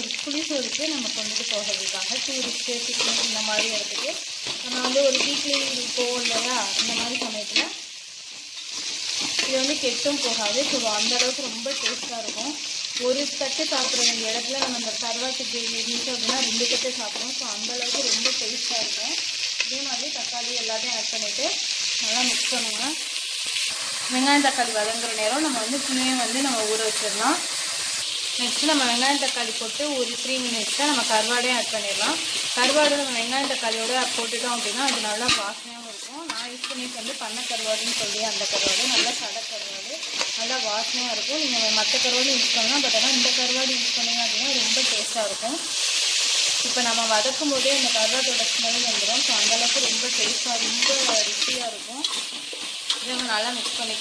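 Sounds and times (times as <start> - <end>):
vegetables sizzling in hot oil: 0.0 - 54.0.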